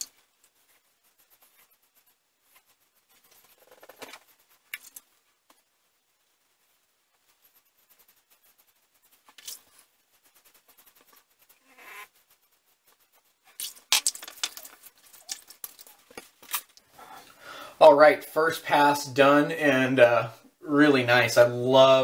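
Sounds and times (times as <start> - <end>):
razor scraping stubble: 0.6 - 5.1, 7.4 - 16.8.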